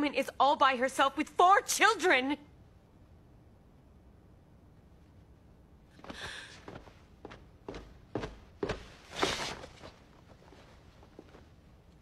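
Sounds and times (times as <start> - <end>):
breathy sound: 6.0 - 6.8
footsteps: 6.0 - 11.6.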